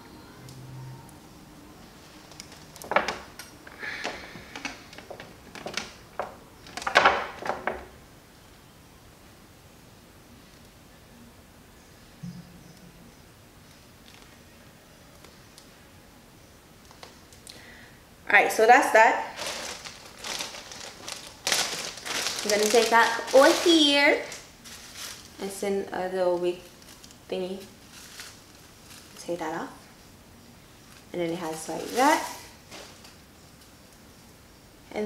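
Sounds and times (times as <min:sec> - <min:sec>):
rustling and clicking handling noise: 0:02.0 - 0:08.0, 0:13.6 - 0:14.4, 0:16.8 - 0:17.6, 0:19.4 - 0:25.6, 0:26.3 - 0:30.2, 0:30.8 - 0:34.4.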